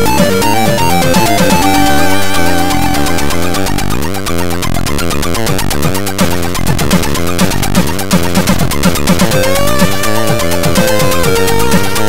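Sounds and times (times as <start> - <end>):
chiptune synth music: 0.0 - 12.0
fast percussive pattern: 0.0 - 12.0.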